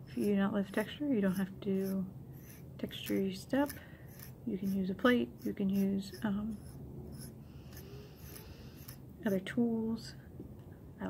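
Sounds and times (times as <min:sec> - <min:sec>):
metal tool scraping wood: 0:00.0 - 0:09.4
small tool clicks: 0:02.4 - 0:04.8, 0:05.4 - 0:09.0.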